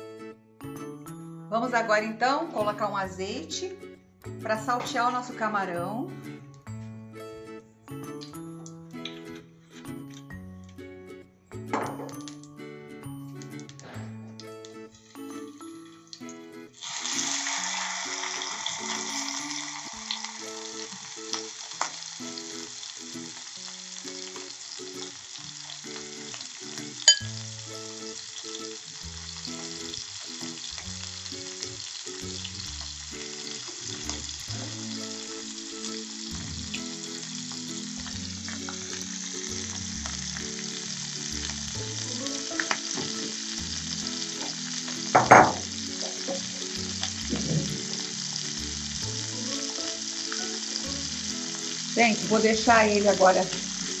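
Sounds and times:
shrimp sizzling in oil: 13.3 - 54.0
sharp clink: 27.1 - 27.3.

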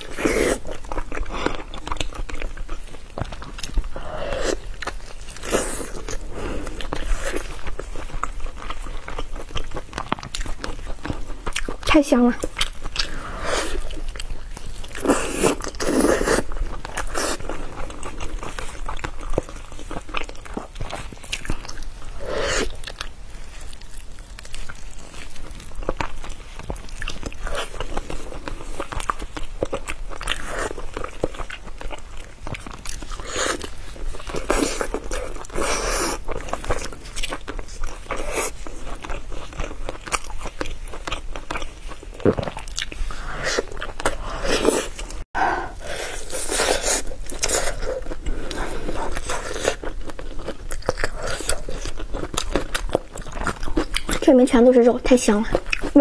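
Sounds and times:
biting and chewing meat: 0.0 - 56.0.

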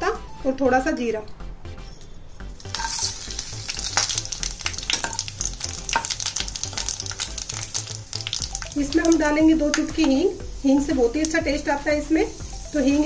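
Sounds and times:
spatula stirring: 2.6 - 8.8
spices sizzling in oil: 2.6 - 13.0.

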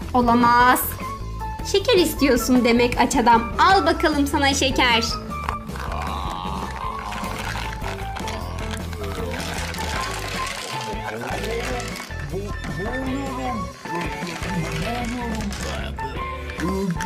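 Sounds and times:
background music with repeating bass: 0.0 - 17.0.

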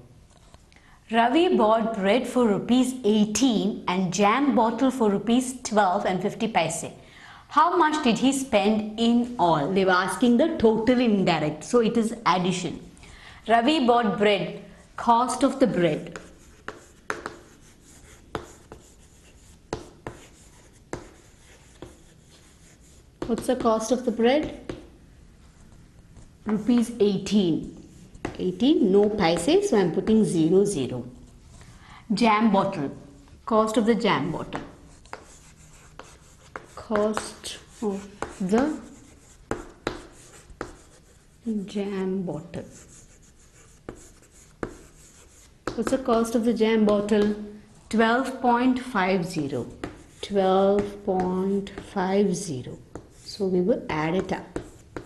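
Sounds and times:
chalk scratching on chalkboard: 15.3 - 30.4, 34.4 - 47.4, 49.0 - 55.0
chalk tapping on board: 16.0 - 25.0, 27.7 - 30.2, 34.4 - 41.6, 42.6 - 47.5, 49.4 - 52.0, 52.9 - 53.3, 54.0 - 55.0.

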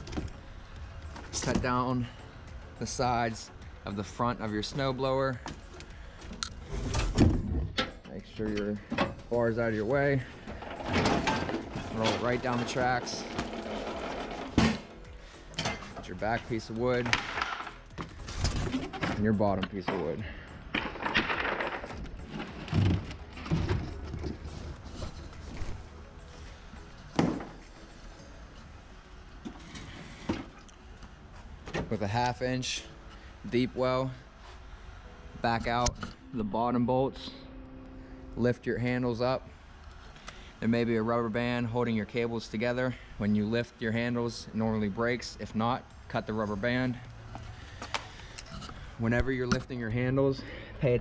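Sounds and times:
cardboard and wood rustling: 20.7 - 27.9.

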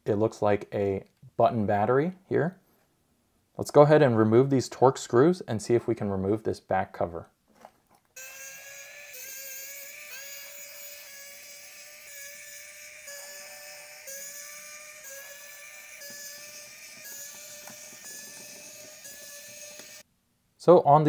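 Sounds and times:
electric screwdriver motor whining: 8.2 - 20.0.

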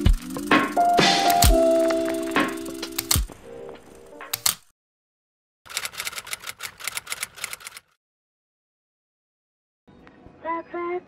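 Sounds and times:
typewriter keystroke clacks: 1.1 - 1.6, 2.3 - 3.3, 4.3 - 4.7, 5.7 - 7.9.

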